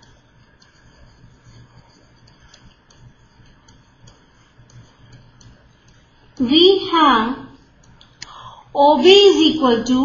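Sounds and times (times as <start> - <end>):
stylus tapping on pen tablet: 0.0 - 6.6.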